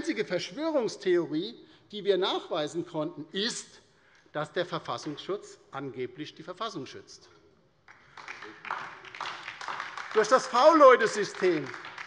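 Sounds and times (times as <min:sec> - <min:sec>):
hand-clapping applause: 0:07.9 - 0:12.0.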